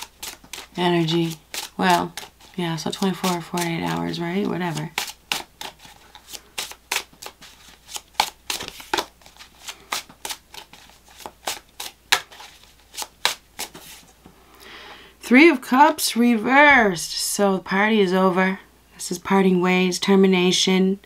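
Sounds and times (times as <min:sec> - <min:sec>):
cards being shuffled: 0:00.0 - 0:14.2.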